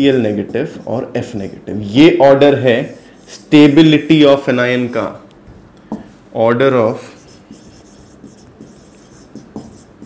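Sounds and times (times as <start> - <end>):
marker scratching on whiteboard: 0.0 - 4.4, 7.0 - 10.0.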